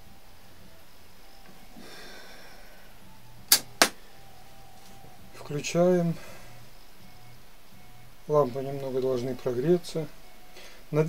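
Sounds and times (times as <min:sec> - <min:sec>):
radio switch clicks: 0:03.5 - 0:04.0.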